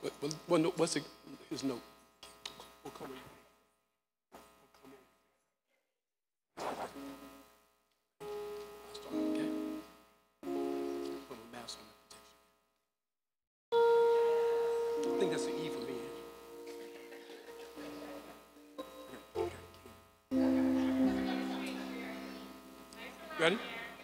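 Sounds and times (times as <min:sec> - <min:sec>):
electronic keyboard held notes: 0:06.8 - 0:07.3, 0:08.2 - 0:11.8, 0:13.7 - 0:24.0.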